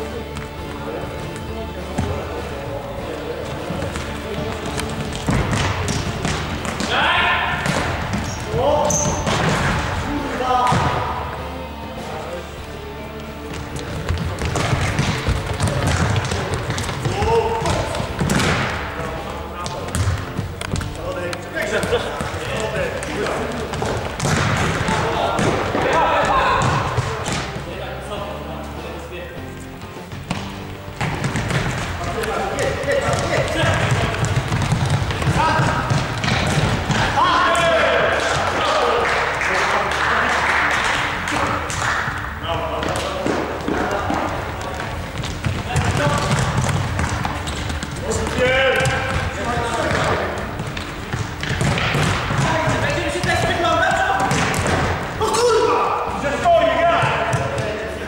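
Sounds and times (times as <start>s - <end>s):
players calling out: 0.0s - 29.1s, 30.4s - 58.0s
ball kicked and bouncing: 3.6s - 11.2s, 13.5s - 27.7s, 29.8s - 37.6s, 42.7s - 55.2s, 56.9s - 57.8s.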